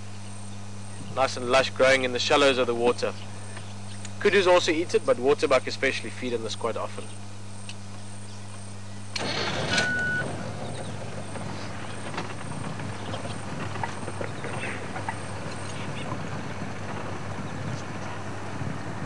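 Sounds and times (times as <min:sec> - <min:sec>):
vehicle engine running: 0:00.0 - 0:19.0
rumbling road noise: 0:09.2 - 0:19.0.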